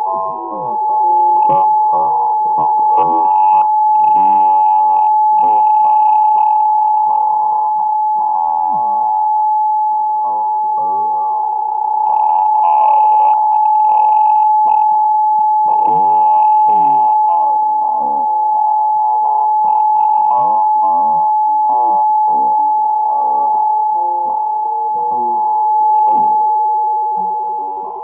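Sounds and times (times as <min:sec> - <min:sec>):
steady high whistle tone: 0:00.0 - 0:28.0.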